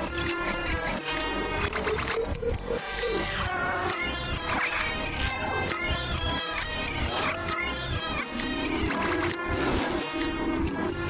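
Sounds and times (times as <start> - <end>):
upbeat cartoon music: 0.0 - 11.0.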